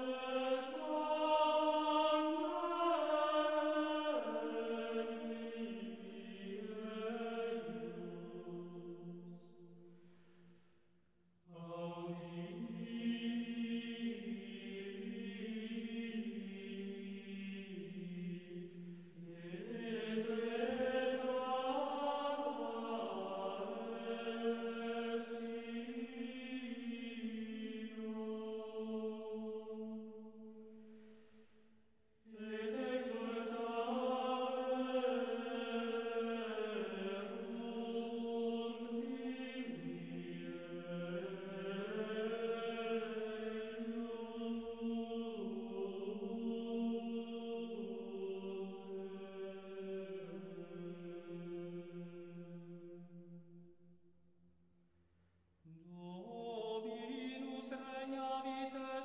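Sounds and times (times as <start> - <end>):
slow meditative chant: 0.0 - 59.0.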